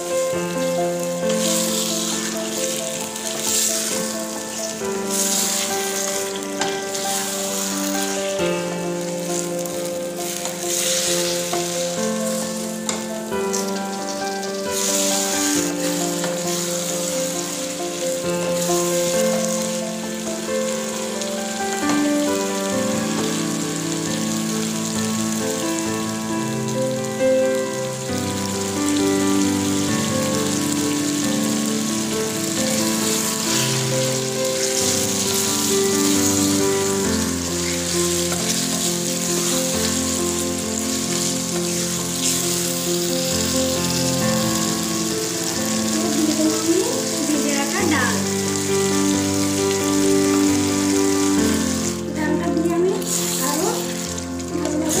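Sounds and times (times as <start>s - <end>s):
background music with held notes: 0.0s - 55.0s
food sizzling in a pan: 0.0s - 55.0s
wooden spatula stirring: 32.7s - 44.7s.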